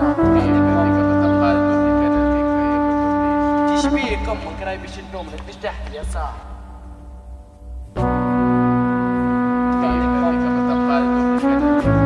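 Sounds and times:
sustained brass chord: 0:00.0 - 0:05.0, 0:08.0 - 0:12.0.

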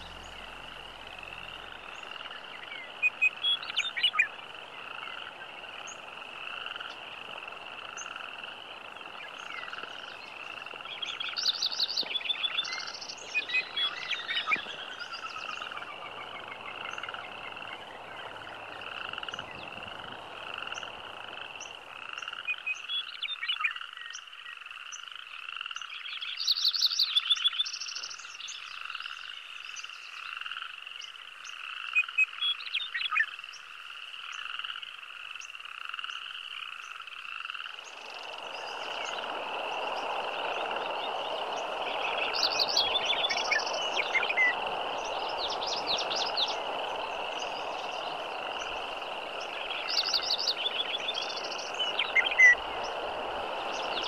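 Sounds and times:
rushing river water: 0:00.0 - 0:22.1, 0:37.7 - 0:54.0
frogs calling in pulses: 0:28.7 - 0:54.0
bird chirps: 0:40.8 - 0:52.9.

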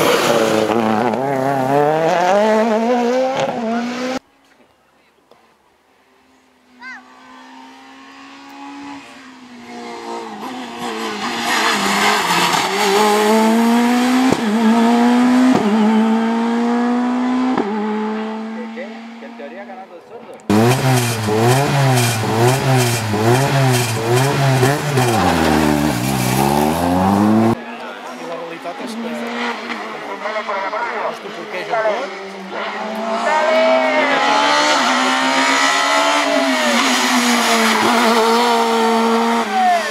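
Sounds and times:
car engine revving: 0:00.0 - 0:04.2, 0:07.1 - 0:19.6, 0:20.4 - 0:27.6, 0:28.7 - 0:39.9
rally car engine accelerating: 0:00.0 - 0:04.2, 0:07.2 - 0:19.4, 0:20.4 - 0:27.6, 0:28.8 - 0:39.9
distant car engine: 0:06.3 - 0:19.6, 0:20.2 - 0:27.6, 0:28.3 - 0:39.9.

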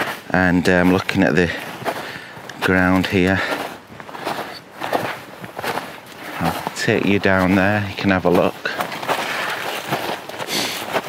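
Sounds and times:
footsteps crunching in snow: 0:00.0 - 0:11.0.

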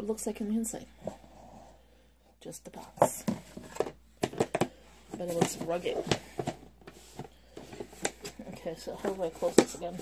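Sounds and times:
plastic toolbox clicks and knocks: 0:03.0 - 0:08.4.

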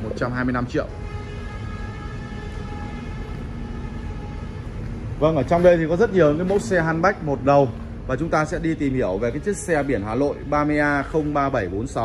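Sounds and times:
machine hum with whine: 0:00.0 - 0:11.4.

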